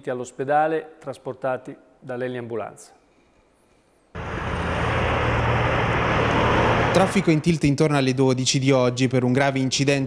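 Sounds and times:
vehicle driving past: 4.2s - 7.8s.

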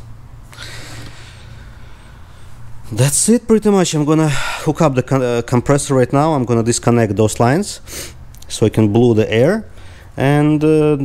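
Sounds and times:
steady low hum: 0.0s - 11.0s
soft hissing exhale: 0.5s - 2.6s.

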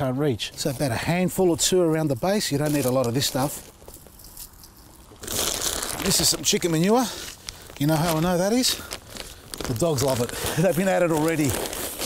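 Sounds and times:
plastic bag rustling and crinkling: 0.6s - 12.0s.

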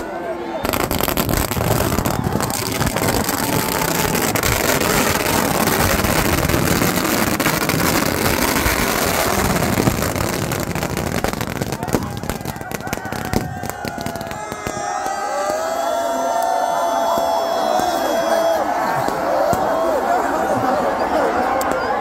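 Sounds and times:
crowd voices: 0.0s - 22.0s
fireworks crackling pops: 0.7s - 15.7s.

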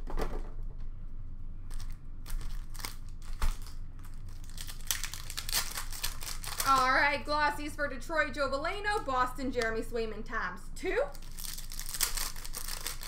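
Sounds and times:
card pack wrapper crinkling: 1.7s - 6.9s, 11.1s - 13.0s.

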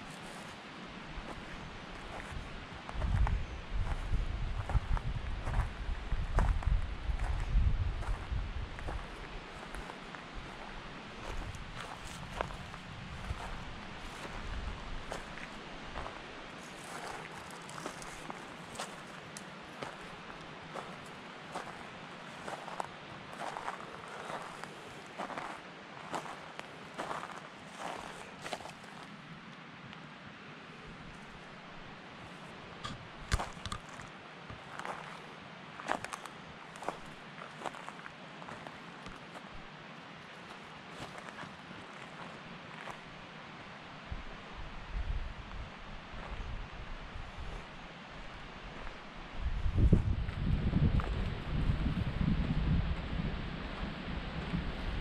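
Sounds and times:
footsteps on forest floor: 8.0s - 21.8s, 22.5s - 29.1s.

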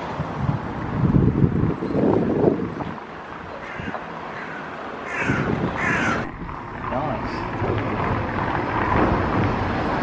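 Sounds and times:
crow cawing: 3.6s - 6.3s.

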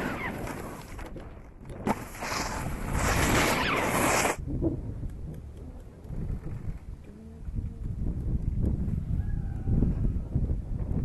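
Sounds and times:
snowboard sliding on packed snow: 0.0s - 1.0s, 1.9s - 4.4s
wind rumble on microphone: 0.0s - 11.0s.

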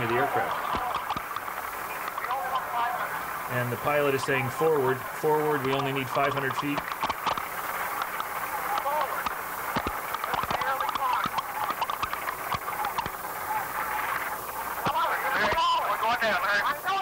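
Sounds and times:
flight crew voices: 0.0s - 17.0s
recording hiss: 0.0s - 17.0s
clicks on recording: 0.1s - 3.2s, 5.6s - 15.6s.

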